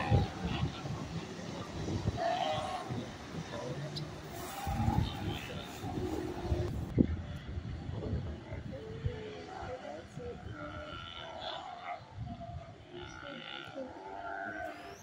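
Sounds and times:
sea lions roaring: 0.0s - 6.8s
wind: 0.0s - 15.0s.

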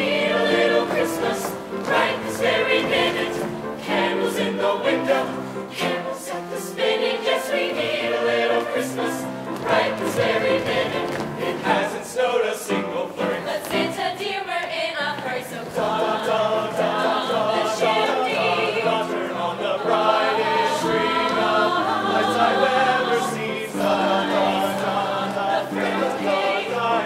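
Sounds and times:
choir singing in harmony: 0.0s - 27.0s.

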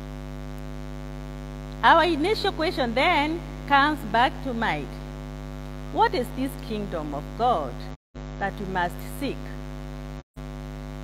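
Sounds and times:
electrical mains hum: 0.0s - 11.0s
woman's voice: 1.8s - 5.0s, 5.9s - 9.6s.

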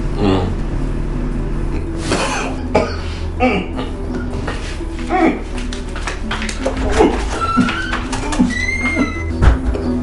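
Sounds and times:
man coughing: 2.1s - 4.0s.

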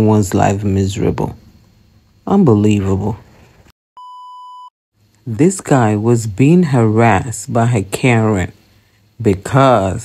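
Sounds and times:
electronic beep: 4.0s - 4.7s.

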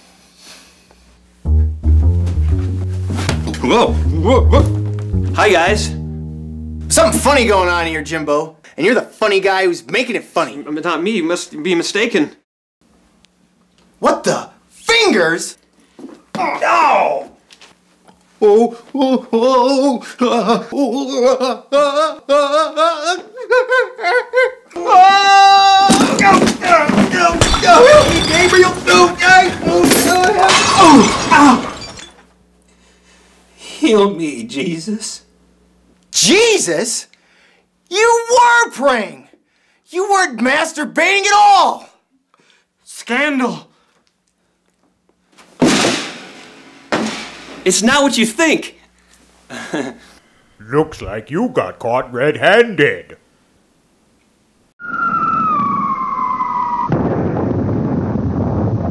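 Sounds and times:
men crying out: 24.8s - 26.8s
crash: 27.3s - 29.0s, 56.9s - 58.9s
glass shattering: 27.3s - 29.0s, 29.8s - 32.2s
falling whistle: 54.8s - 57.0s
explosion-like burst: 56.9s - 58.9s.

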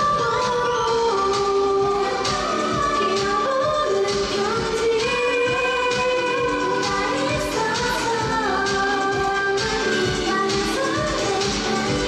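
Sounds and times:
upbeat pop dance backing track: 0.0s - 12.0s
women singing pop song: 0.0s - 12.0s.

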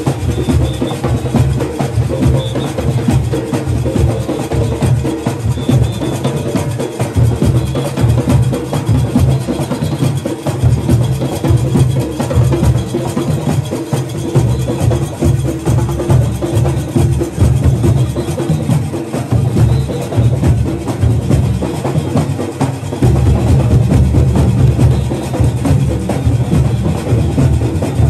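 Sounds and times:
barrel drums beaten by hand: 0.0s - 28.0s.

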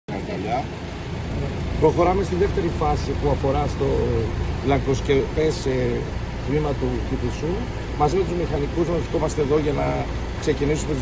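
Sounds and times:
traffic: 0.0s - 11.0s
heavy machinery engine rumble: 0.1s - 11.0s
man speaking: 0.2s - 11.0s.

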